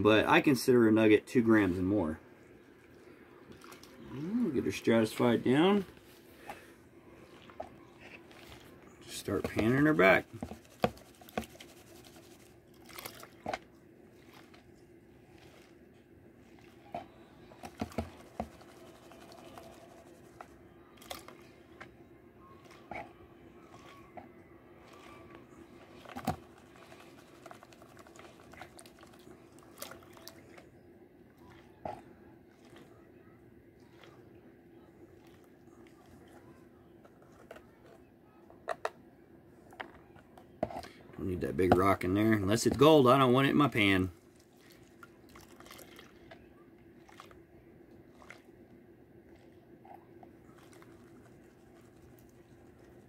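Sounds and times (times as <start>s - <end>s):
steady low hum: 0.0s - 53.0s
water sloshing in a pan: 2.5s - 21.9s, 22.5s - 33.1s, 42.3s - 53.0s.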